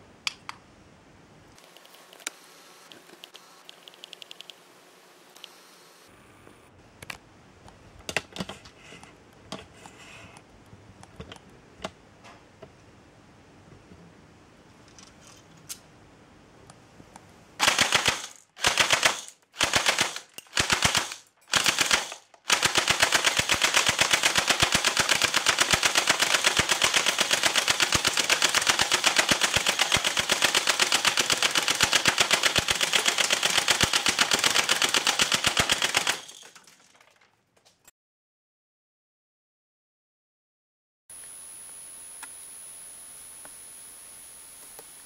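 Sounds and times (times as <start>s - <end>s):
airsoft gun firing rapid shots: 17.6s - 36.4s.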